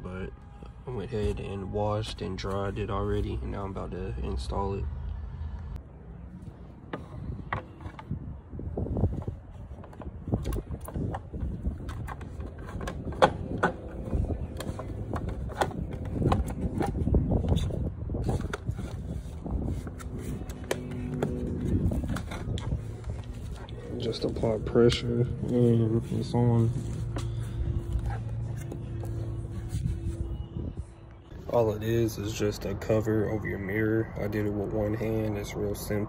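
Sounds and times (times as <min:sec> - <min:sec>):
low rumbling handling noise: 0:06.4 - 0:36.0.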